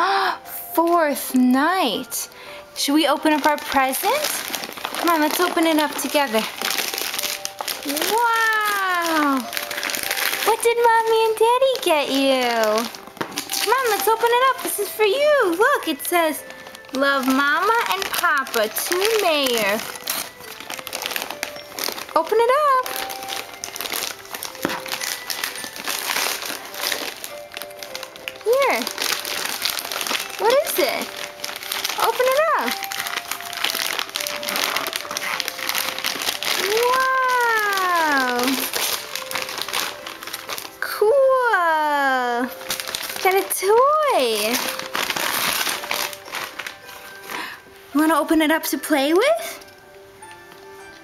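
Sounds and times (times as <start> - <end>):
gift paper crinkling: 0.4 - 51.0.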